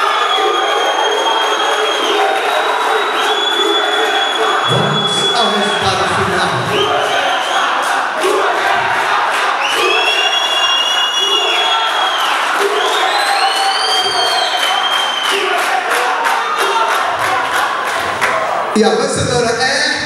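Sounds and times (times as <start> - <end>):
crowd cheering and clapping: 0.0 - 18.8.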